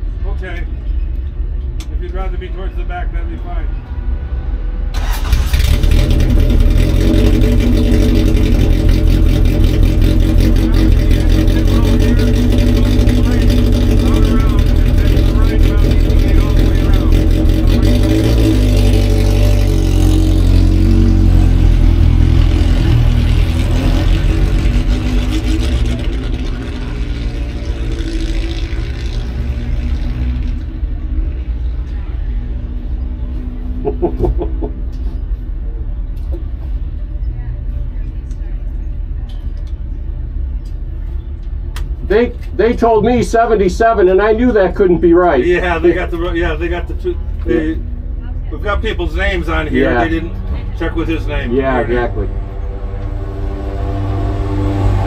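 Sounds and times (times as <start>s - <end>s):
race car engine running: 5.0s - 33.2s, 40.8s - 55.0s.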